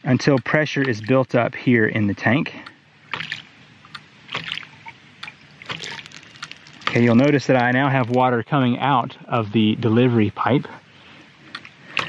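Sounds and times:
water rushing: 0.0s - 12.0s.

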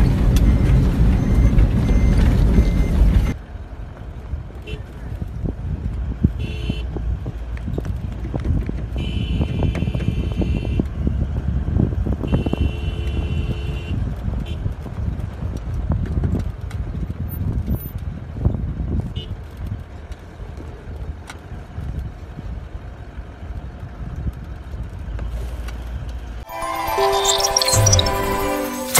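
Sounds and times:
off-road vehicle rumble: 0.0s - 26.4s
short high-pitched sounds: 26.4s - 28.9s.

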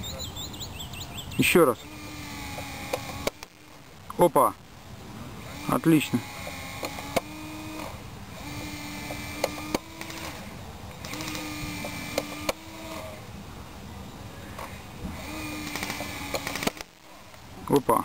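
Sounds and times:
electric motor and gearbox whirring: 0.9s - 13.4s, 14.4s - 18.0s
sharp clicks: 1.4s - 4.2s, 5.7s - 13.1s, 14.6s - 17.4s.

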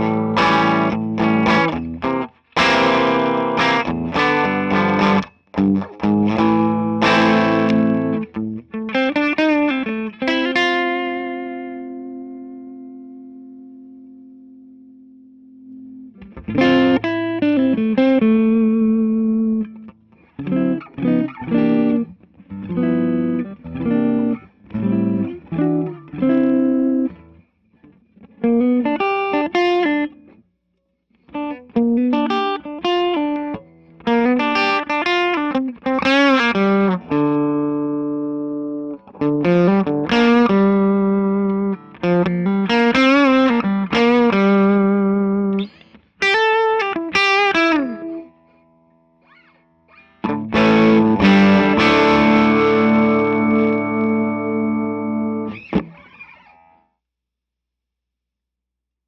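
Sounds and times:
electric guitar with string bends: 0.0s - 30.4s, 31.1s - 56.9s.

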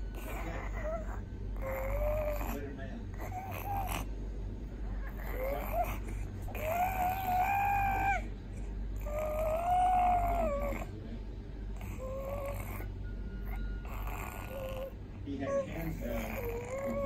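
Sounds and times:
baby vocalizing: 0.1s - 4.1s, 4.9s - 8.3s, 9.0s - 10.9s, 11.8s - 12.9s, 13.5s - 17.0s.

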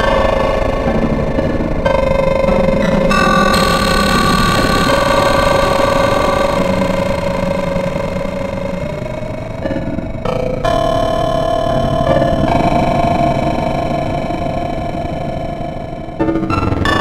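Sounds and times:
noisy low rumble: 0.0s - 16.6s
synthesizer sustained chords: 0.0s - 17.0s.

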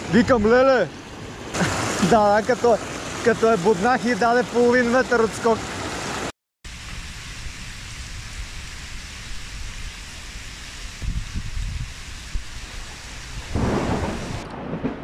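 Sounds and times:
heavy rain on water: 0.1s - 15.0s
thunder rolling: 13.3s - 15.0s.

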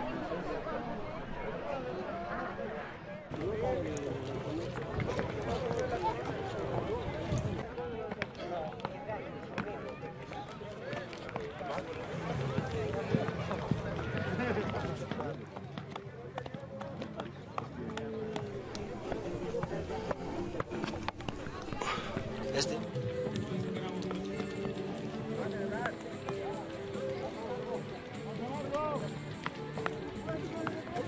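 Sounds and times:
people talking indistinctly: 0.0s - 31.0s.

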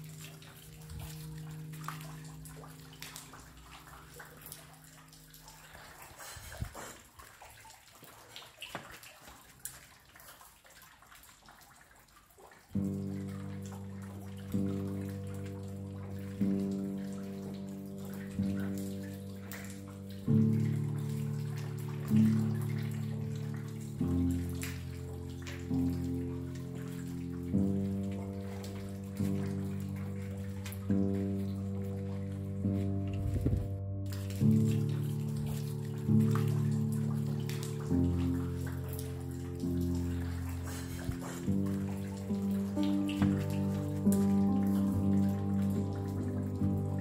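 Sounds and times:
piano chords: 0.0s - 6.0s, 12.7s - 47.0s
rain with drips: 0.0s - 47.0s.

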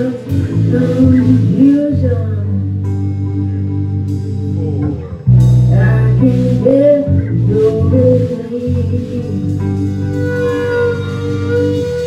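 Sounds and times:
electric bass: 0.0s - 12.0s
live rock band playing: 0.0s - 12.0s.

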